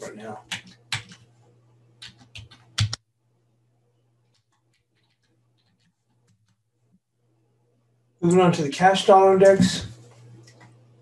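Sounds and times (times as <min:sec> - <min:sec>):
faint low hum: 0:00.0 - 0:11.0
computer keyboard typing: 0:00.4 - 0:01.3, 0:02.0 - 0:03.0, 0:04.3 - 0:06.6.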